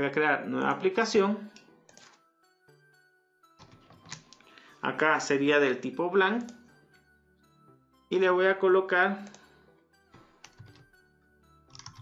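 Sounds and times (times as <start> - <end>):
faint background music: 0.0 - 12.0
keyboard typing: 9.2 - 9.5, 10.4 - 11.0, 11.6 - 12.0.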